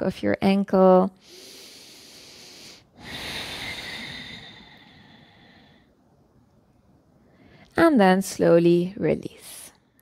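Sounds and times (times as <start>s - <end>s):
woman breathing deeply: 1.2s - 6.2s.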